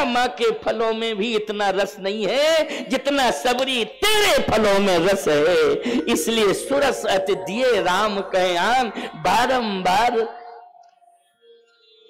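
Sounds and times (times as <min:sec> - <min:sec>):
man chanting: 0:03.9 - 0:10.7
faint held tone: 0:05.0 - 0:12.0.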